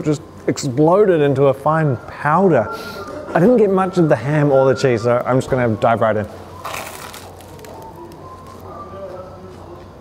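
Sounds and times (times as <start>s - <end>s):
crunchy bite into toasted sandwich: 6.6s - 8.6s
quiet chewing: 6.6s - 8.9s.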